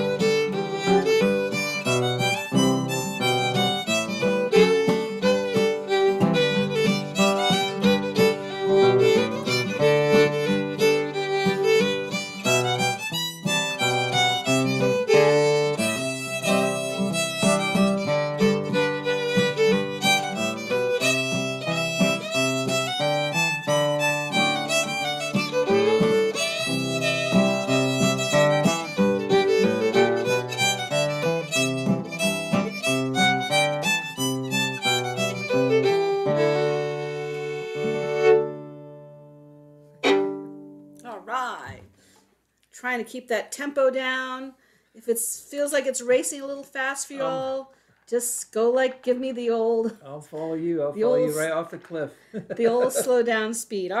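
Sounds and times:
acoustic guitar strumming chords: 0:00.0 - 0:41.2, 0:47.1 - 0:47.6
fiddle tune: 0:00.0 - 0:41.8, 0:46.8 - 0:47.7, 0:50.7 - 0:51.6, 0:52.4 - 0:53.3.

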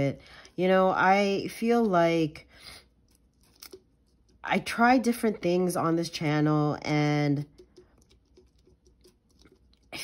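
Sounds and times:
fingers handling plastic ball: 0:02.9 - 0:04.5, 0:07.3 - 0:10.0.

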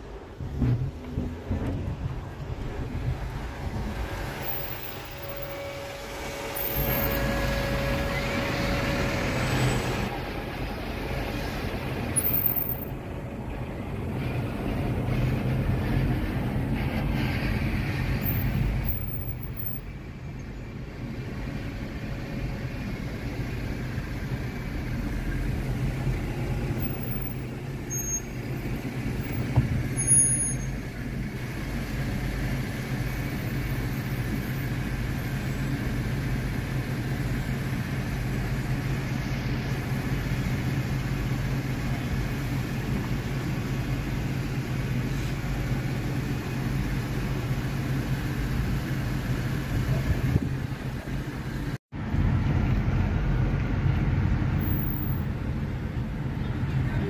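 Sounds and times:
low engine hum in traffic: 0:00.0 - 0:57.0.

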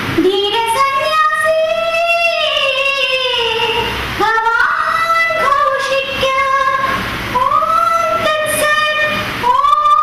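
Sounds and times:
high singing voice: 0:00.2 - 0:10.0.

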